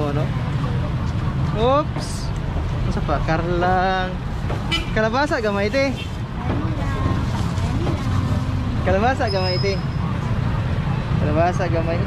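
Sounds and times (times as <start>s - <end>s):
low rumble of street traffic: 0.0s - 12.0s.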